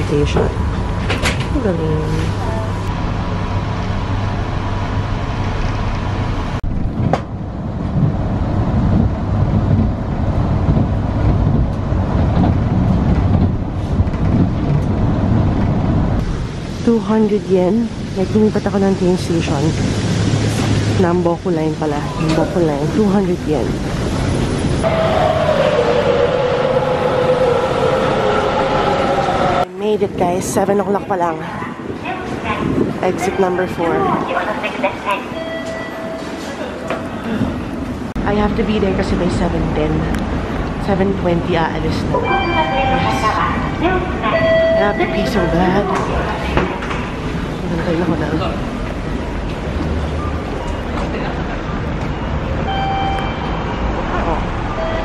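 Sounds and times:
train rumble and rail noise: 0.0 - 55.0
voices: 24.8 - 40.2, 40.8 - 48.8.

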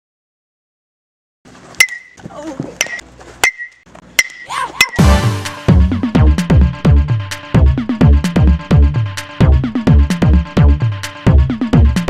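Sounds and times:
metal bat pinging balls: 1.8 - 5.1.

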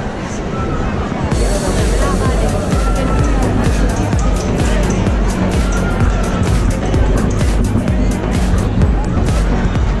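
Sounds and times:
voices: 0.0 - 10.0
music with bass and percussion: 1.3 - 10.0.

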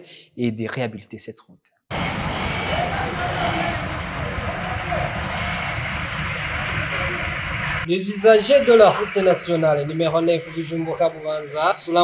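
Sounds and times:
vehicles going by: 1.9 - 12.0.

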